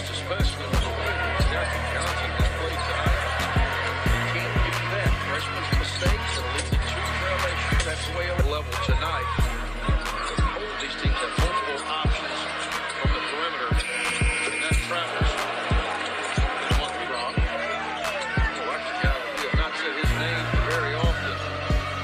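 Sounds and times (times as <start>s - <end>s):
hip-hop beat with vocals: 0.0s - 22.0s.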